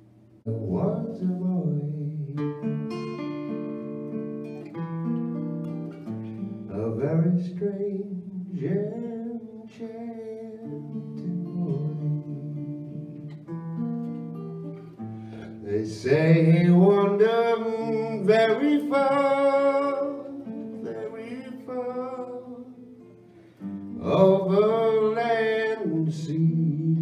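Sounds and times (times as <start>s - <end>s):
acoustic guitar picking: 0.0s - 27.0s
person singing: 6.7s - 13.4s, 15.4s - 23.0s, 24.0s - 27.0s.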